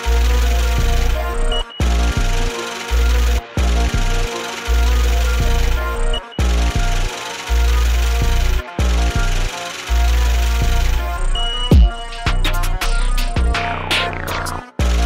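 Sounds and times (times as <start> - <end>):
drums: 0.0 - 2.6, 5.3 - 15.0
heavy bass notes with pitch glides: 0.0 - 15.0
synth melody: 0.0 - 15.0.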